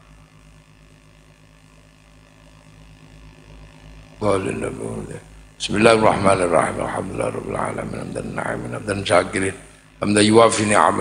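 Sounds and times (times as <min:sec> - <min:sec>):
faint low hum: 0:00.0 - 0:11.0
background hiss: 0:02.2 - 0:11.0.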